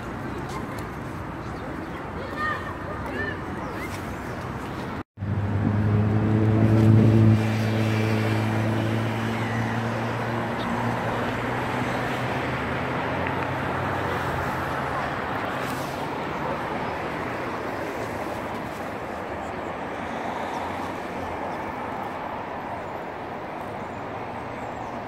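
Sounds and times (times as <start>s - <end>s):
outdoor city noise: 0.0s - 25.0s
low engine drone: 5.2s - 10.9s.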